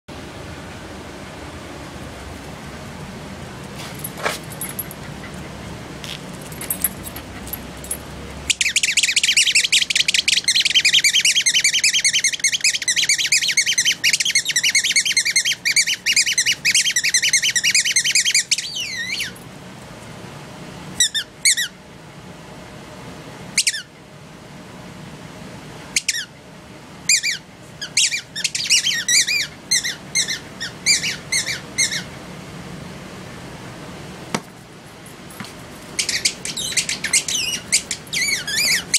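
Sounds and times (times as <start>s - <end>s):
squeaky dog toy squeaking: 8.5s - 19.4s, 26.0s - 26.3s, 27.1s - 32.1s, 36.0s - 38.9s.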